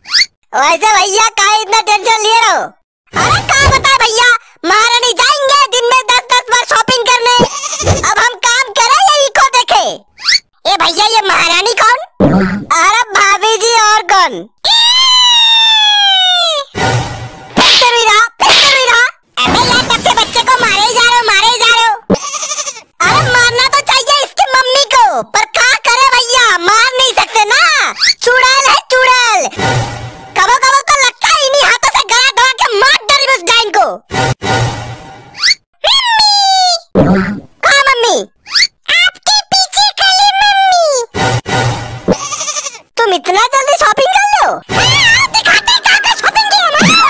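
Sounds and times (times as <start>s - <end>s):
cartoon character speaking: 0.5s - 10.0s, 10.6s - 14.5s, 17.6s - 22.1s, 23.0s - 29.5s, 30.4s - 34.0s, 35.8s - 37.0s, 37.6s - 41.1s, 43.0s - 47.0s
high-pitched cartoon voices: 35.4s - 39.1s, 43.8s - 47.0s.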